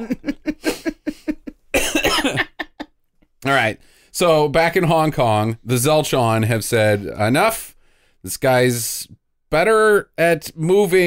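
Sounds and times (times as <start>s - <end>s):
person coughing into microphone: 1.7s - 2.6s.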